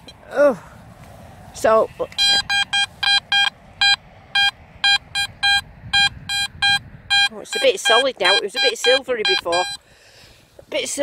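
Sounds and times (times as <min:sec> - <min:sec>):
metal detector short beeps: 0:02.2 - 0:09.8.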